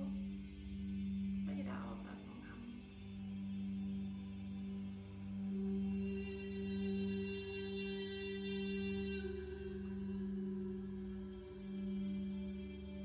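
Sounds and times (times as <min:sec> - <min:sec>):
low singing bowl hum: 0:00.0 - 0:13.0.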